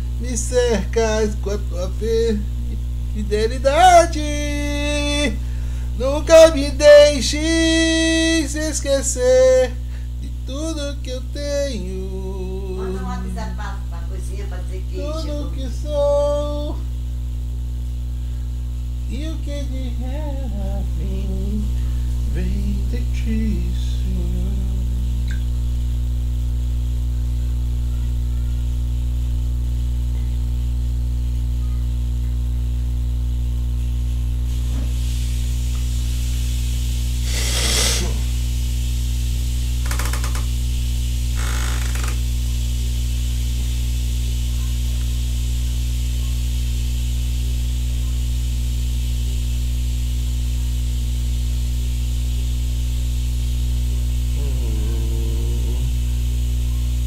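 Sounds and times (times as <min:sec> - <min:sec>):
electrical mains hum: 0:00.0 - 0:57.0
short hisses: 0:37.2 - 0:38.4.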